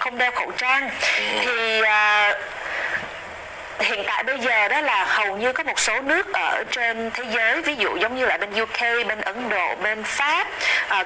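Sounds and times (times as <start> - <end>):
person talking: 0.0 - 2.5
faint hiss: 0.6 - 5.6.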